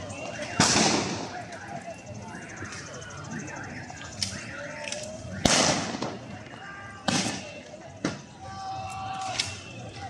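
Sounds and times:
gunshot bang: 0.6s - 1.2s, 5.4s - 6.2s
people shouting: 6.2s - 10.0s.

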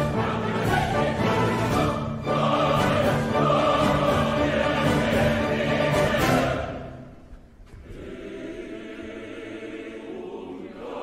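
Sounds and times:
orchestra playing: 0.0s - 7.1s
choir singing long chords: 0.0s - 7.2s, 7.8s - 11.0s.

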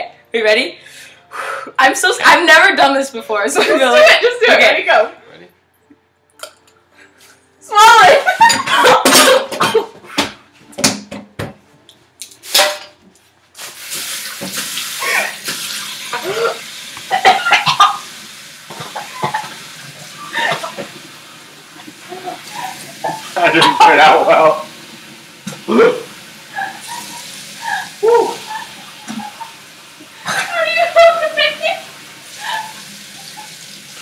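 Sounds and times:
person coughing and gagging: 8.5s - 10.0s, 16.2s - 18.0s, 30.2s - 30.6s
tap running: 18.7s - 21.2s, 25.4s - 25.7s, 28.5s - 30.2s.

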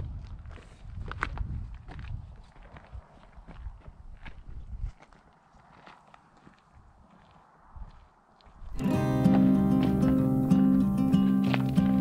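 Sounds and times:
footsteps on rocky gravel: 0.0s - 12.0s.

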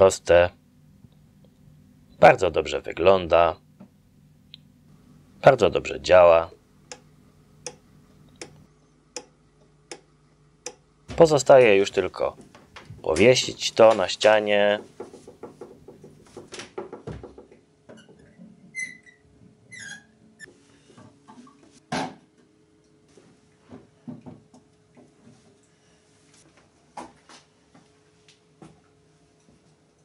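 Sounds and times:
short squeaks: 18.0s - 20.5s.

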